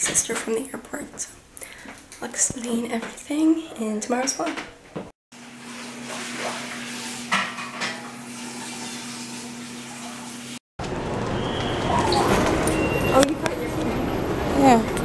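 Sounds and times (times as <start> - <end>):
distant voices: 10.9 - 15.0
busy crowd hubbub: 11.6 - 15.0.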